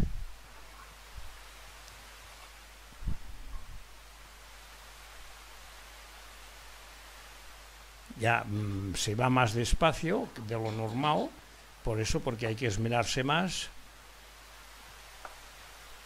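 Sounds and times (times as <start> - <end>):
faint background hiss: 0.0 - 16.0.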